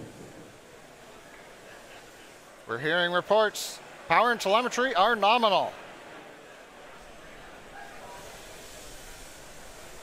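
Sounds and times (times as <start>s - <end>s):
faint rushing hiss: 0.0s - 4.1s, 5.2s - 10.0s.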